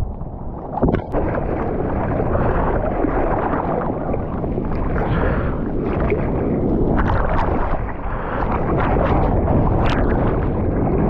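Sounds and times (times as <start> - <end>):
water sloshing against surfboard: 0.0 - 11.0
water splashes: 0.0 - 11.0.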